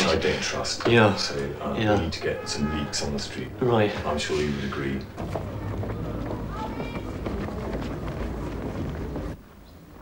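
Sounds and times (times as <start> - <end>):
indistinct voices: 0.0 - 9.4.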